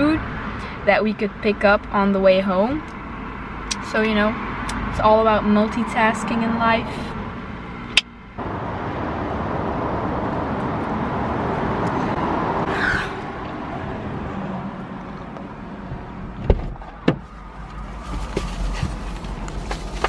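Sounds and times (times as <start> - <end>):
traffic passing: 0.0 - 20.0
car door knocks: 15.9 - 17.2.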